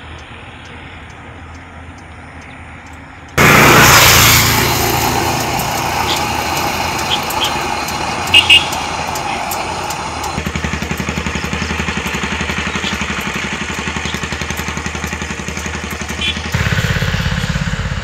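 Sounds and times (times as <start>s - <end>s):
vehicle engine running: 0.0s - 18.0s.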